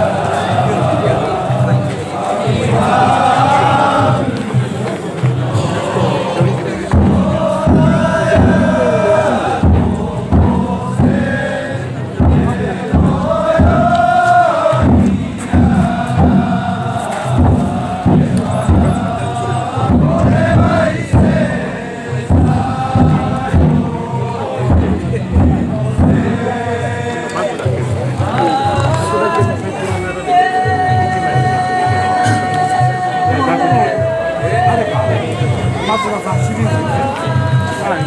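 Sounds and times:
men chanting: 0.0s - 38.0s.

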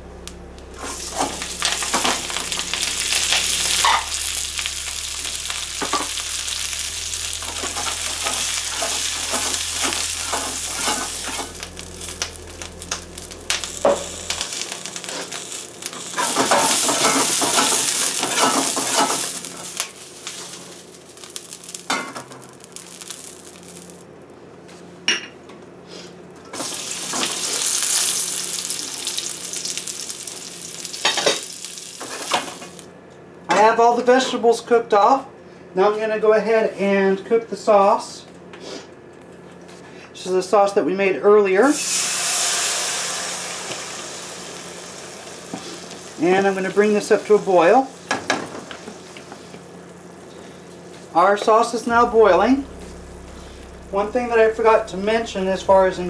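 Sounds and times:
spatula scraping wok: 0.8s - 20.6s
vegetables sizzling in hot oil: 0.8s - 24.1s, 26.6s - 32.8s, 41.7s - 50.9s.

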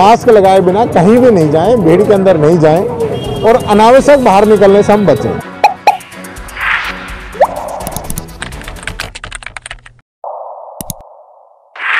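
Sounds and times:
outro music: 5.4s - 9.2s
rising swish: 6.4s - 8.1s
rapid typing-like clicks: 7.8s - 10.0s.

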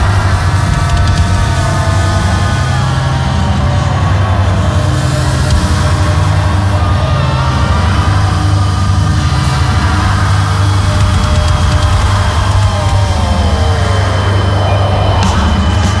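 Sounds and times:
heavy rock music: 0.0s - 16.0s.

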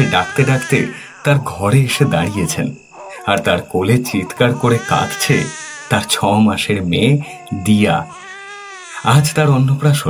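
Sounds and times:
person speaking: 0.0s - 8.2s, 9.0s - 10.0s
infant crying: 0.0s - 9.6s.

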